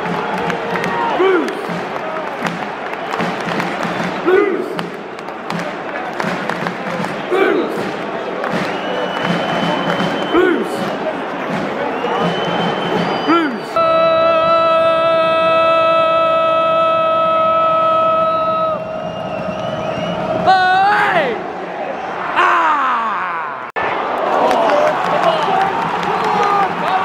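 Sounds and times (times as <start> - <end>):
stadium crowd noise: 0.0 - 27.0
people shouting: 0.8 - 1.7, 4.2 - 4.8, 7.3 - 7.8, 10.3 - 10.8, 22.2 - 23.7.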